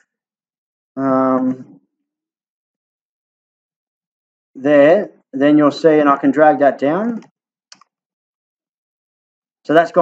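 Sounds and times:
speech: 0:01.0 - 0:01.8, 0:04.6 - 0:07.2, 0:09.7 - 0:10.0.

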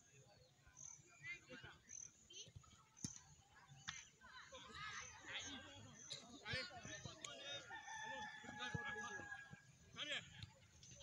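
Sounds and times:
rooster crowing: 0:07.6 - 0:09.3.

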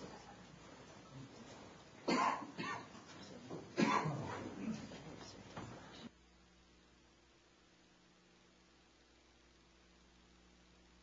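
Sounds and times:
person coughing: 0:02.0 - 0:03.0, 0:03.8 - 0:04.9.

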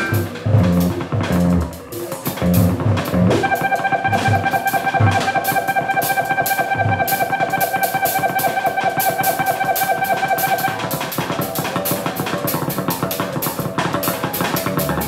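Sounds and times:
drum and cymbal strokes: 0:00.0 - 0:15.0
experimental rock trio: 0:00.0 - 0:15.0
held high electric guitar tone: 0:03.4 - 0:10.8.

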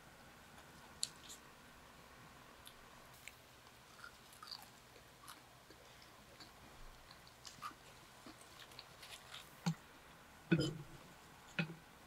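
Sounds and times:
chewing a burger: 0:02.6 - 0:09.8.

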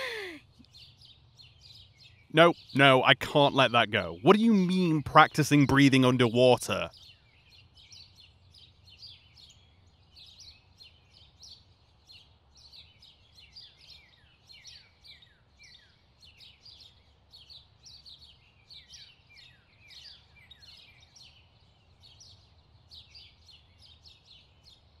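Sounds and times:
low steady background hum: 0:00.0 - 0:18.9
small birds chirping: 0:00.0 - 0:25.0.

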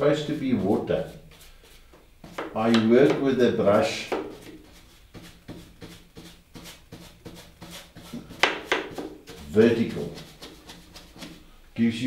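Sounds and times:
brush scraping paint on canvas: 0:00.0 - 0:11.6.

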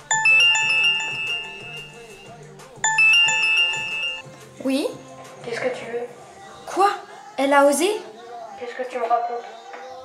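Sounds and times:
phone ringtone chiming: 0:00.0 - 0:04.3
soft background music: 0:00.0 - 0:10.0.

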